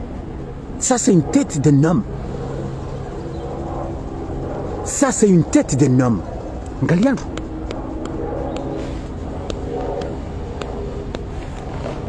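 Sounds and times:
low mechanical drone: 0.0s - 12.0s.

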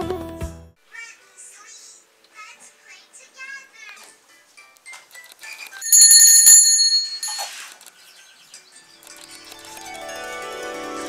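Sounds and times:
brass hand bell ringing: 5.8s - 7.5s.

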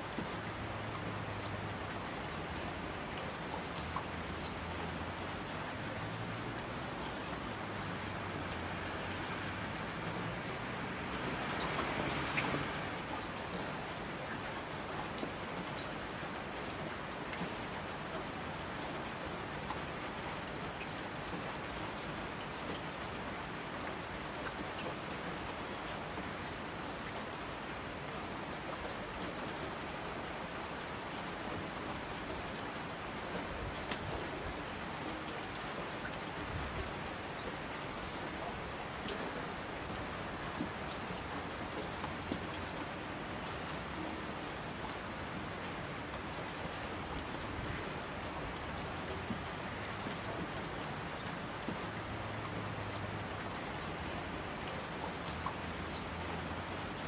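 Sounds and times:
steady rain falling: 0.0s - 57.0s.

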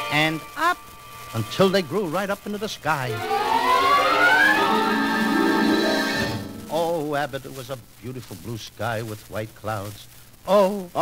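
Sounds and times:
orchestra music: 3.1s - 7.0s.

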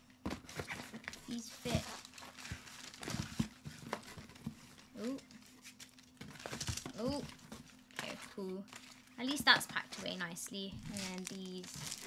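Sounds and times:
cardboard and packaging rustling: 0.2s - 12.0s
packages knocking into box: 6.2s - 7.5s.

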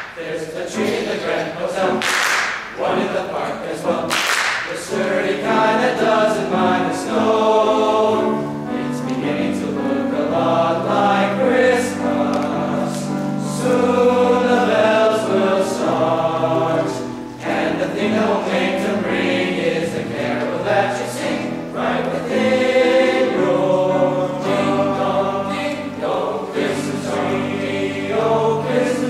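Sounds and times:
choir clapping: 0.0s - 8.2s, 10.2s - 29.0s
men's choir singing in harmony: 0.0s - 29.0s.

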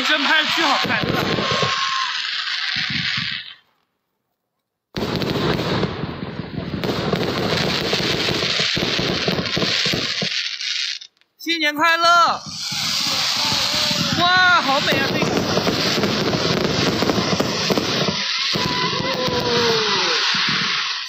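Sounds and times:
fireworks crackling: 0.0s - 3.7s, 4.9s - 21.0s.

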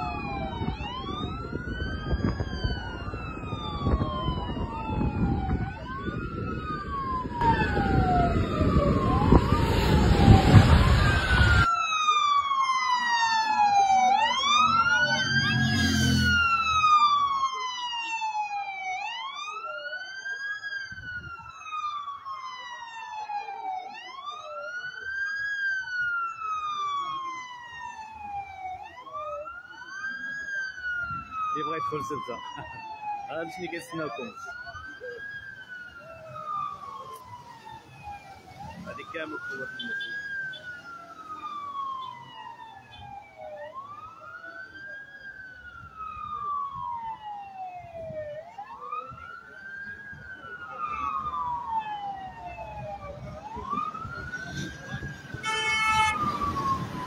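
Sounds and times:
sirens wailing: 0.0s - 57.0s.

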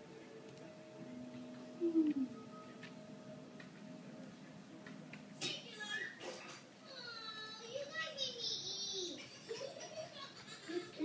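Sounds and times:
film soundtrack music from television: 0.0s - 11.0s.

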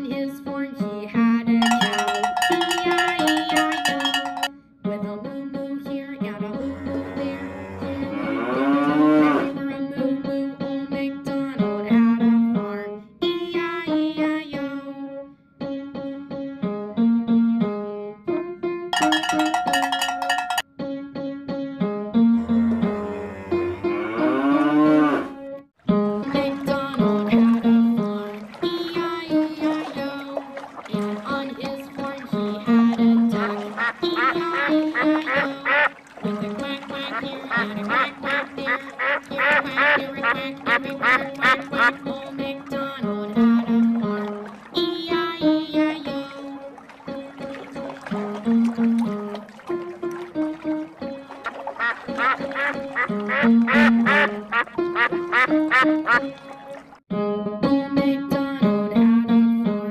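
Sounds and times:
children's song music: 0.0s - 24.8s, 25.8s - 59.9s
cow mooing: 6.6s - 9.6s, 22.4s - 25.4s
duck quacking: 33.5s - 36.0s, 37.1s - 42.0s, 51.7s - 56.3s.

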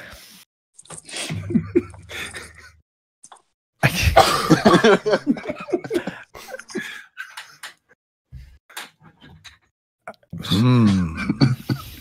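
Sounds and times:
people laughing over voice call: 4.2s - 7.6s.

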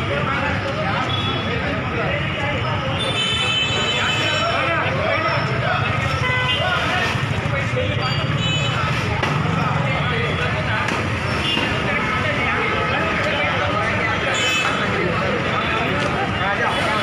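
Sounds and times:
street traffic noise: 0.0s - 17.0s.

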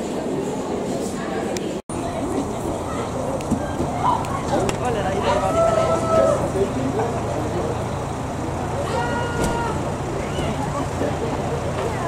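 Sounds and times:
street traffic: 0.0s - 12.0s.

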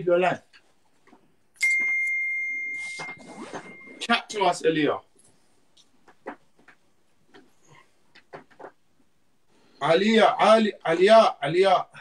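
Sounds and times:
bell-like chime: 1.6s - 4.0s.

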